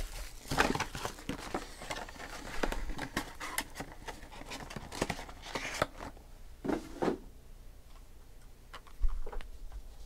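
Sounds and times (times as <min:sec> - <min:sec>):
card packs rustling: 0:00.0 - 0:06.1.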